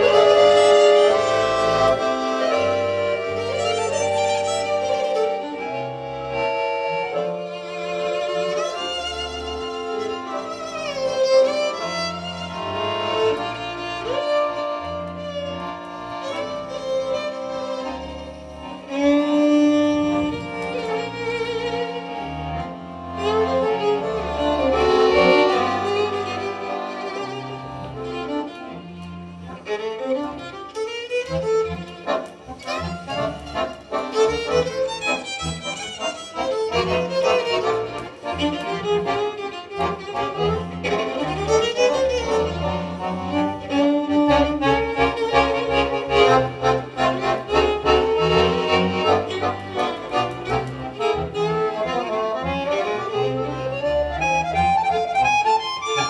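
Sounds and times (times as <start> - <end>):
accordion bass notes: 0.0 - 56.0
violin melody: 0.0 - 56.0.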